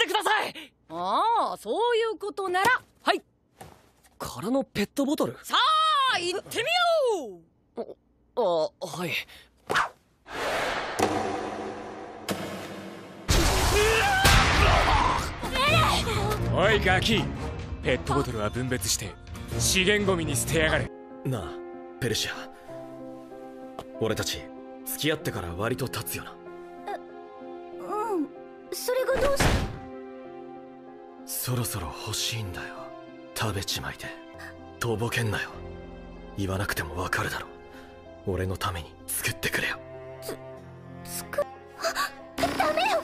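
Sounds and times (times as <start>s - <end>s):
soft background music: 14.9s - 43.0s.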